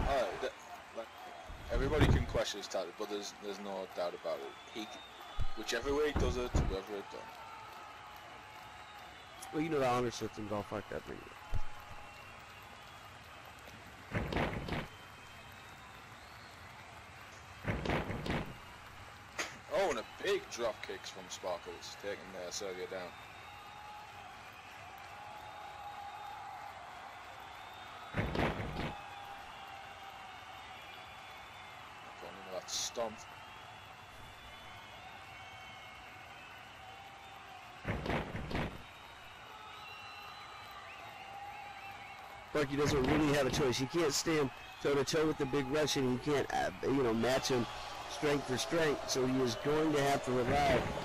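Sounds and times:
slam-like thumps: 5.4s - 6.8s, 14.1s - 15.0s, 17.6s - 18.6s, 28.2s - 29.0s, 37.8s - 38.9s.

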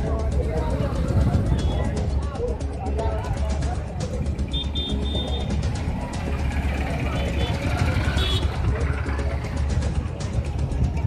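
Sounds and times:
background music with steady beat: 0.0s - 11.0s
crowd voices: 0.0s - 11.0s
vehicles passing: 0.0s - 11.0s.

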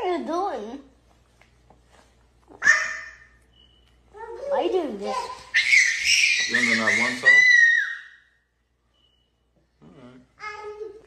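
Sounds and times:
child squealing: 5.5s - 8.2s.

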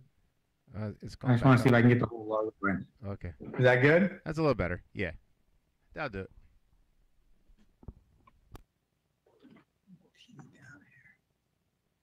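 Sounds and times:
faint whispered speech: 9.9s - 11.2s.

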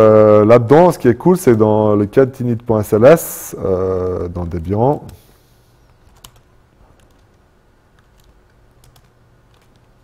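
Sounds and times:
laptop keyboard typing: 6.0s - 10.0s.

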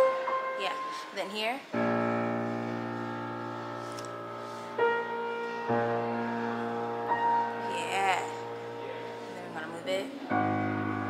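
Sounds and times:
piano chords played slowly: 0.0s - 11.0s.

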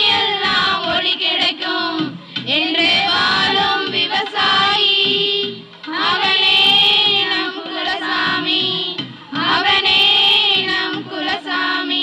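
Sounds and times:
women singing in unison: 0.0s - 12.0s.

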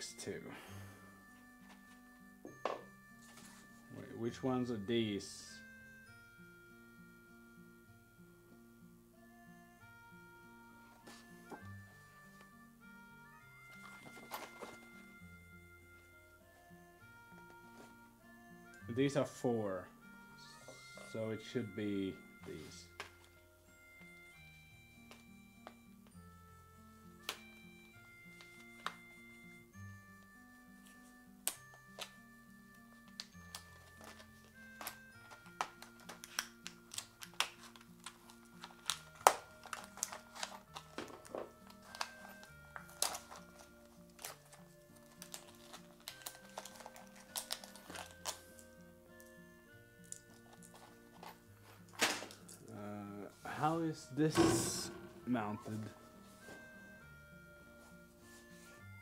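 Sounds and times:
quiet background music: 0.0s - 59.0s.

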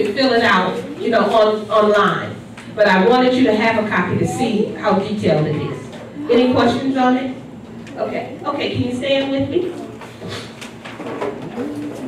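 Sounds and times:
low voices: 11.4s - 12.0s.

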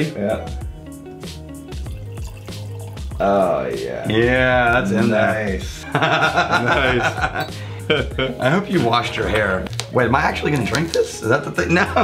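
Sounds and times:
background music: 0.0s - 12.0s
liquid pouring into a glass: 1.6s - 3.6s.

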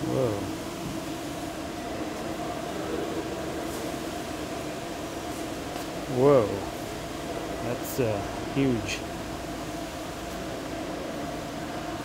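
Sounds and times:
mechanical hum with two tones: 0.0s - 12.0s.

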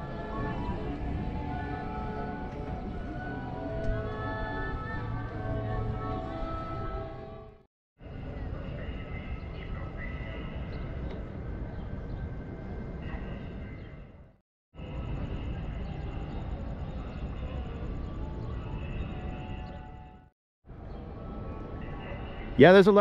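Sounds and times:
low city rumble: 0.0s - 23.0s
faint distant voices: 8.0s - 11.0s.

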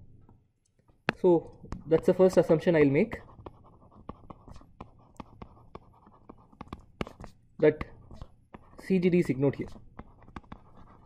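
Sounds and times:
stylus tapping on tablet screen: 3.4s - 7.4s, 9.6s - 11.0s.

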